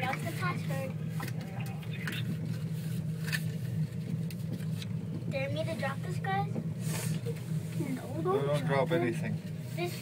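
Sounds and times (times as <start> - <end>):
muffled voices: 0.0 - 2.5
gondola cabin hum: 0.0 - 10.0.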